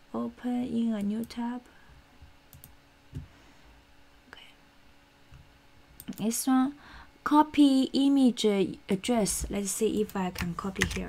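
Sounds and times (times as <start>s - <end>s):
steady hum: 0.0s - 11.0s
computer mouse clicks: 2.5s - 3.3s, 6.0s - 6.3s.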